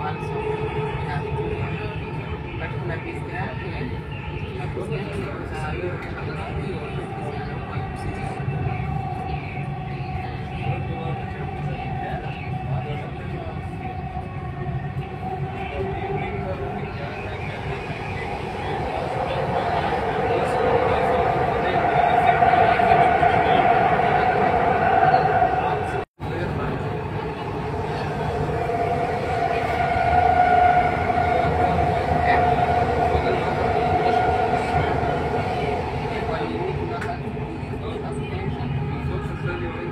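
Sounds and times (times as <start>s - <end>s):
train rumble with whine: 0.0s - 39.9s.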